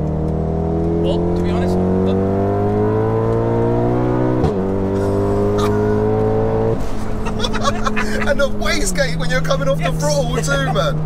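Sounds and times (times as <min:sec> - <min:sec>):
turbocharged car engine accelerating: 0:00.0 - 0:11.0
people laughing: 0:05.0 - 0:06.1, 0:06.9 - 0:08.9, 0:09.8 - 0:10.9.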